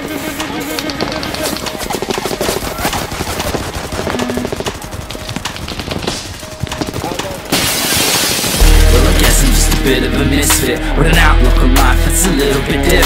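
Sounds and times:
music: 0:00.0 - 0:13.0
heavy bass beat: 0:08.6 - 0:13.0.

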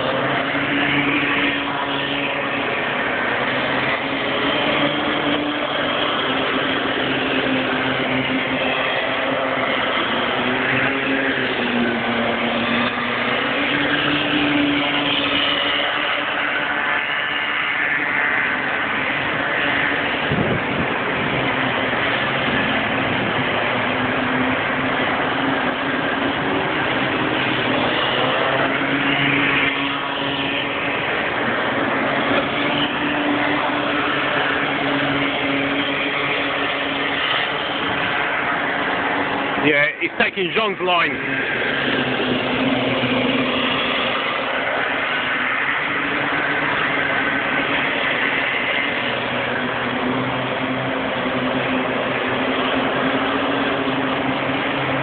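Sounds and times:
kart engines buzzing: 0:00.0 - 0:55.0.

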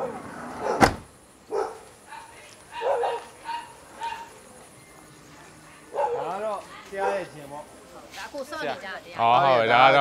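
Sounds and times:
dog barking: 0:00.0 - 0:00.9, 0:01.5 - 0:04.3, 0:05.9 - 0:07.3.

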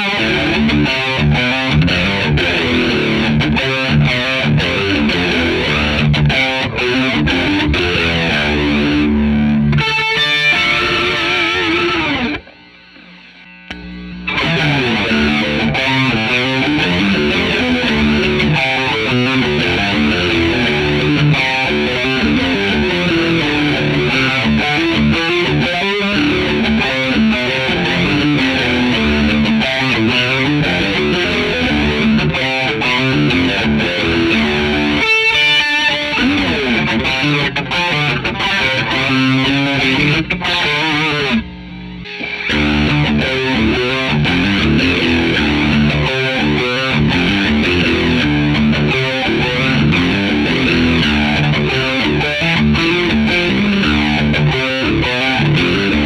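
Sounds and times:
distorted electric guitar with flanger: 0:00.0 - 0:56.0.

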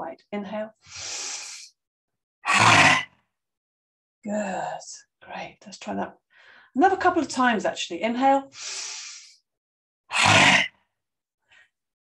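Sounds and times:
rasping exhale from throat: 0:00.9 - 0:01.7, 0:08.6 - 0:09.4
woman hissing inhale: 0:00.9 - 0:01.7, 0:08.5 - 0:09.4.

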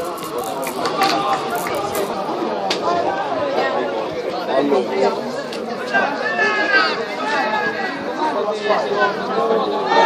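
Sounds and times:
spectators talking and calling out: 0:00.0 - 0:10.0.

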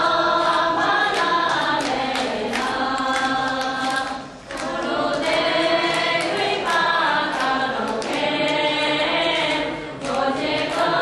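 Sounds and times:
group chanting in unison: 0:00.0 - 0:11.0.

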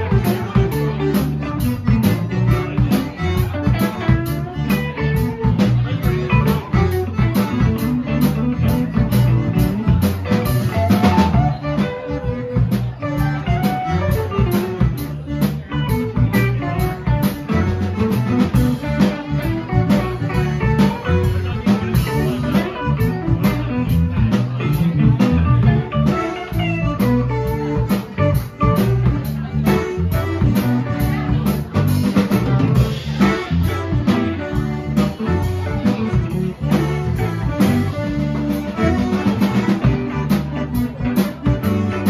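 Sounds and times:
bass guitar: 0:00.0 - 0:42.0
button accordion: 0:00.0 - 0:42.0
drum kit beat: 0:00.0 - 0:42.0
electric guitar: 0:00.0 - 0:42.0.

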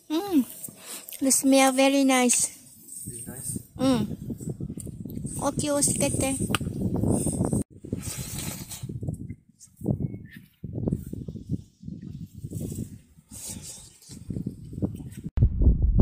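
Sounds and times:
wind rumbling on microphone: 0:02.5 - 0:16.0.

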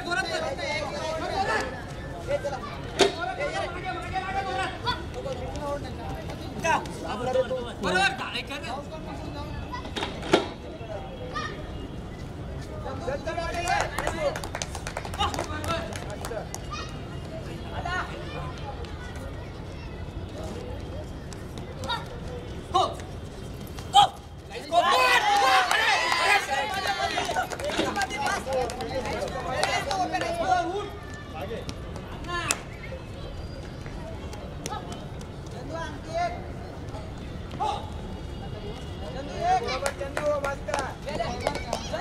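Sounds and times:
people shouting calls: 0:23.9 - 0:32.6.

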